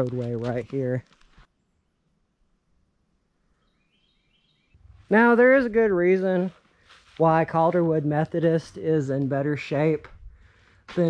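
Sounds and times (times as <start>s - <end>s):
bird chirps: 3.5s - 4.9s.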